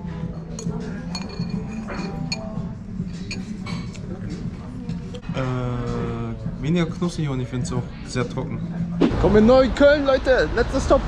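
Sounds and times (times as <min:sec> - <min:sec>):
background music: 0:00.0 - 0:11.0
tableware clinking: 0:00.3 - 0:04.2.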